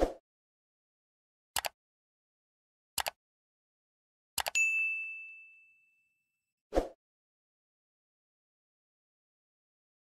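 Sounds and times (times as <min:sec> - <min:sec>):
mouse click double tick: 0:01.6 - 0:01.8
bright bell-like ding: 0:04.6 - 0:06.2.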